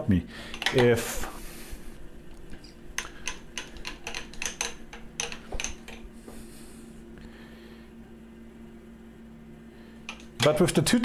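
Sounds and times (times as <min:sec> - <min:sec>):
low machine hum: 0:00.0 - 0:11.0
metal parts clicking: 0:00.5 - 0:00.9, 0:03.0 - 0:06.0.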